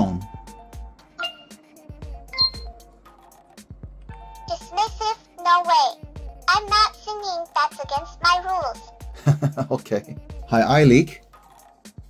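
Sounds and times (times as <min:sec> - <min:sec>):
faint electronic tones: 0:01.2 - 0:01.6, 0:02.3 - 0:02.7
high-pitched synthesized voice: 0:04.5 - 0:08.9.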